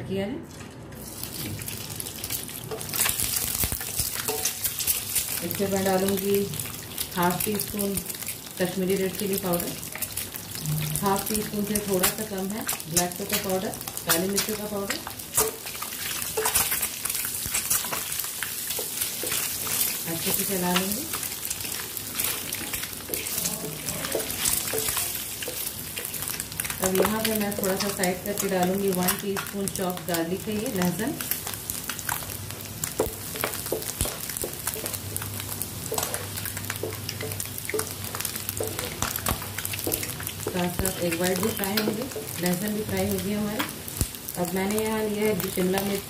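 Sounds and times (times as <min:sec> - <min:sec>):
oil sizzling in a pan: 0:01.0 - 0:46.0.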